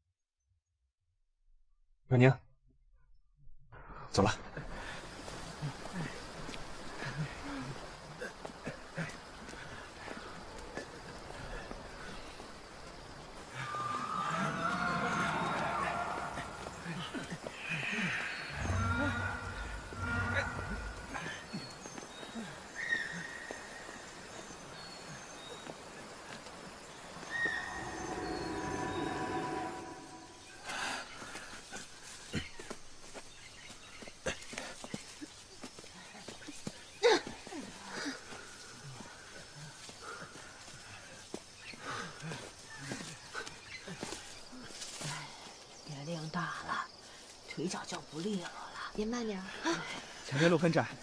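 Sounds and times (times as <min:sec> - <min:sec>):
people grunting with effort: 0:05.4 - 0:12.2, 0:13.5 - 0:23.2, 0:37.0 - 0:40.8, 0:41.8 - 0:45.1
footsteps in undergrowth: 0:18.3 - 0:50.2.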